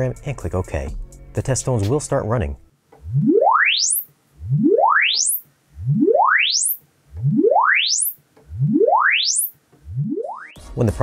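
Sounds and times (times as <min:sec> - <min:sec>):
rising test tone sweeps: 0:03.0 - 0:10.6.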